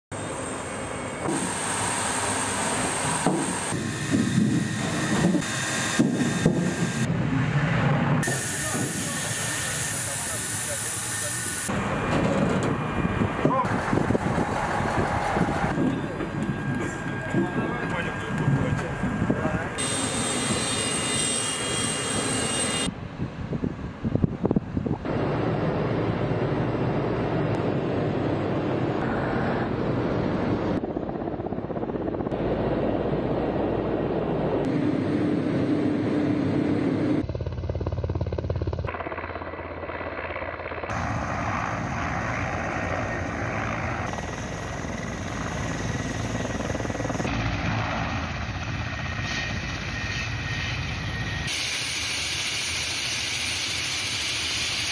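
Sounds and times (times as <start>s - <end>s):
helicopter turbines and rotors: 0.1s - 54.9s.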